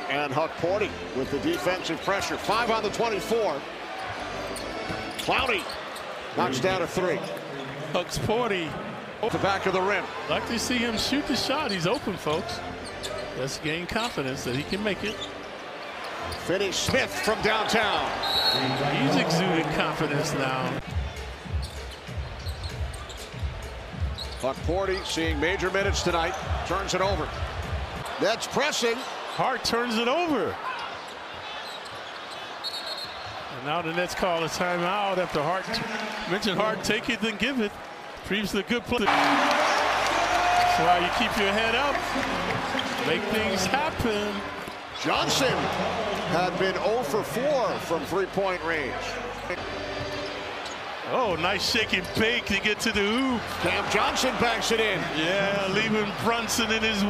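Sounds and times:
arena crowd murmur: 38.3 - 57.0.

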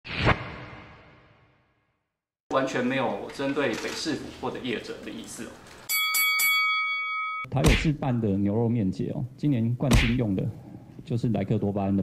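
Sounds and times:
whoosh into a hit: 0.0 - 1.6.

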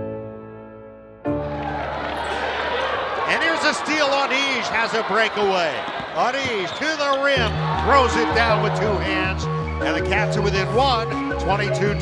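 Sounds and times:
basketball dribbling: 5.8 - 6.8
sneaker squeaks on hardwood: 5.8 - 7.4.

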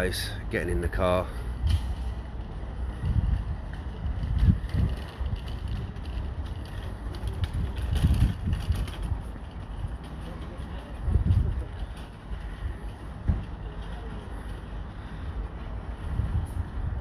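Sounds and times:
wind buffeting microphone: 1.6 - 17.0.

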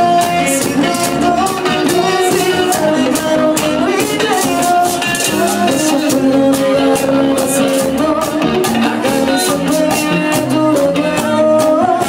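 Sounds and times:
live band playing bachata: 0.0 - 12.0
person singing: 0.0 - 12.0.

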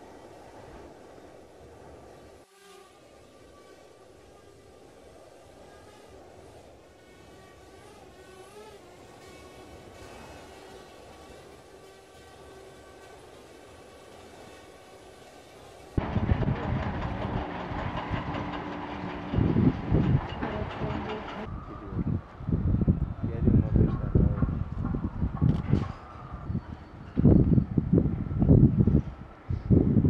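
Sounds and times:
steady mechanical din: 16.0 - 21.5
wind buffeting microphone: 16.0 - 30.0.

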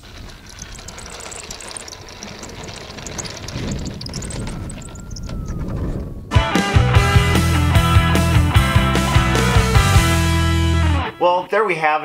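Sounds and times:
model plane electric motor: 0.0 - 5.7
wheels rolling on asphalt: 0.0 - 6.3.

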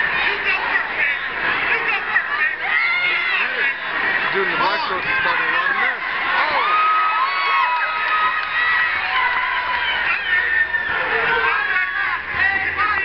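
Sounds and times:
crowd cheering and shouting: 0.0 - 13.0.

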